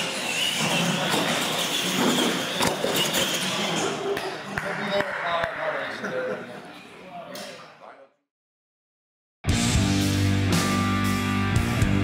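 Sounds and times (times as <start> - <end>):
toy truck motor and gear whine: 0.0 - 3.7.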